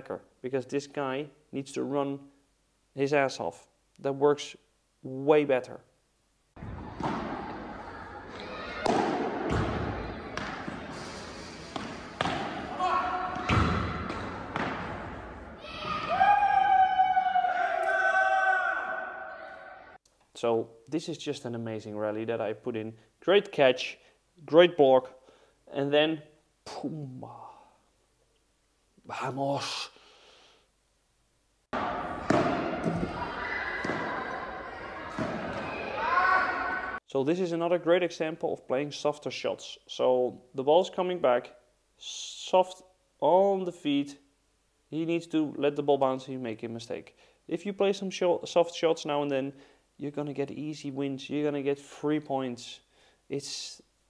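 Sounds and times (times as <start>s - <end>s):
room noise: 0.0s - 41.4s
padel ball hits echoing: 6.6s - 11.0s, 11.7s - 16.0s, 31.8s - 34.4s, 35.1s - 35.8s
players' voices: 6.7s - 14.8s.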